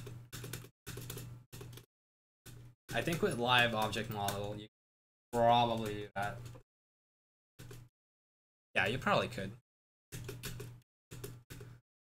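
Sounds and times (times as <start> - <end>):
computer keyboard clicks: 0.0 - 1.9, 5.7 - 6.6, 10.1 - 11.8.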